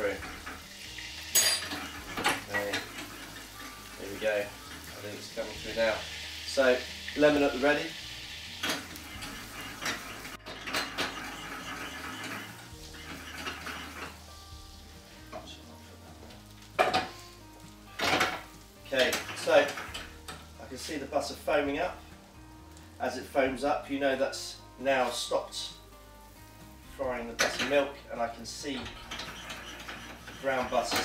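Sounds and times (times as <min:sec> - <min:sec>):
pan and utensils clinking: 0:00.0 - 0:07.8, 0:08.5 - 0:14.3, 0:16.7 - 0:20.9, 0:27.2 - 0:31.0
butter sizzling: 0:00.0 - 0:31.0.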